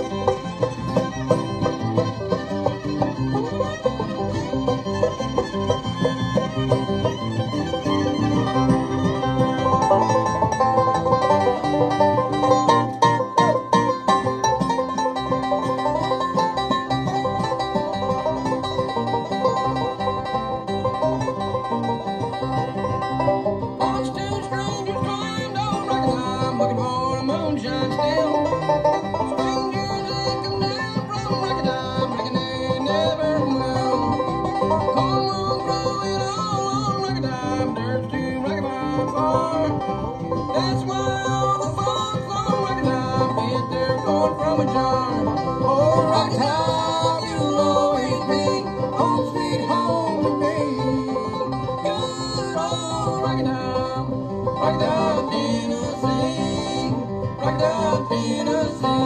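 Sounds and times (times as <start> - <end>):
acoustic guitar: 0.0 - 59.0
banjo rolls: 0.0 - 59.0
bass: 0.0 - 59.0.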